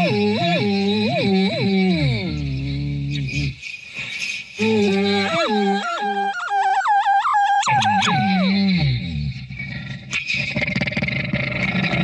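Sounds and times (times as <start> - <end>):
woman vocalising yodel-like: 4.6 - 8.6.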